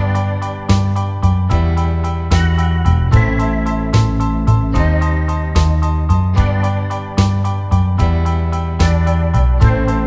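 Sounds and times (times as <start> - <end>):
keyboard chords: 0.0 - 10.0.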